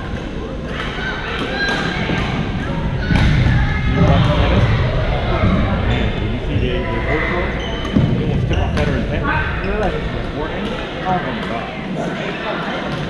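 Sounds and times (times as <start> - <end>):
background chatter: 0.0 - 13.0
sneakers squeaking on court: 7.5 - 8.9.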